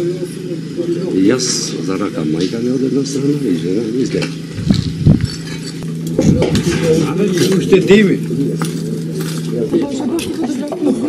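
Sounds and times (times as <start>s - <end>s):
people talking: 0.0s - 4.9s, 6.1s - 11.0s.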